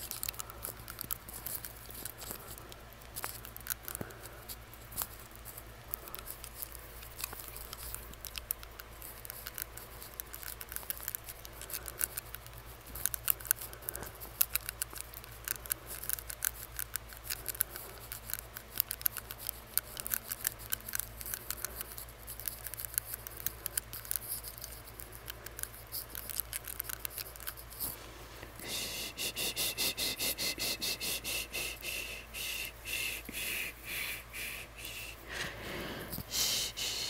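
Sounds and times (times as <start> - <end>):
tongue ring clicking on teeth: 0.0 - 27.8.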